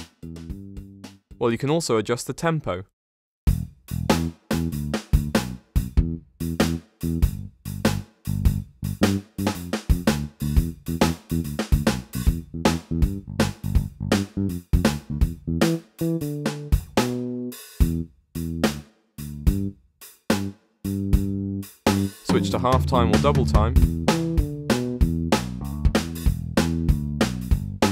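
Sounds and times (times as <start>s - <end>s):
bass notes: 0.0s - 1.0s, 3.5s - 27.9s
drum hits: 21.9s - 26.7s.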